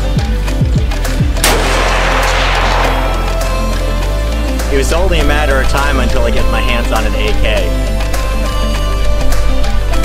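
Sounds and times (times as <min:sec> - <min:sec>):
rifle shot with echo: 0:01.4 - 0:04.1.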